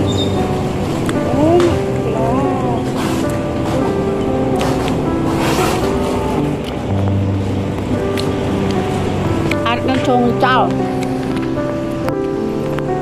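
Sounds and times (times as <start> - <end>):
background music with held notes: 0.0 - 13.0.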